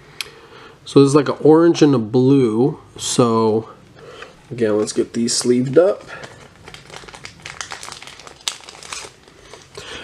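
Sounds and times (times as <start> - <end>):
plastic sleeves crinkling: 4.2 - 10.0.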